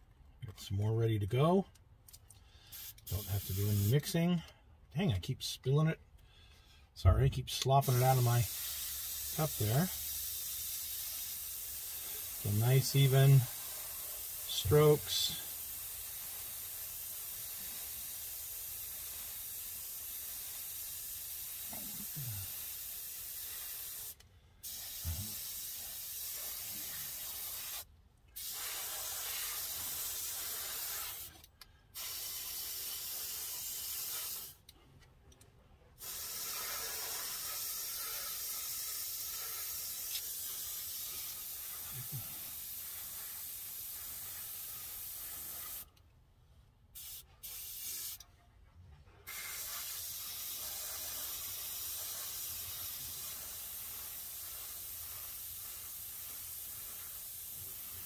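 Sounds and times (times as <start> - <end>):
airbrush spraying paint: 2.6 - 4.1, 7.8 - 34.6, 36.0 - 46.0, 47.0 - 48.2, 49.2 - 58.0.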